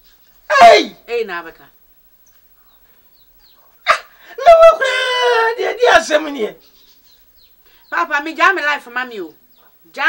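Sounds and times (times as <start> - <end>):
chicks peeping: 2.2 - 3.8, 6.6 - 8.1.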